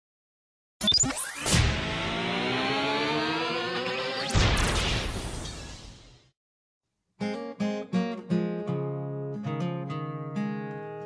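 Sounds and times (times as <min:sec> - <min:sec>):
buzzy tone rising in pitch: 0:01.0 - 0:04.3.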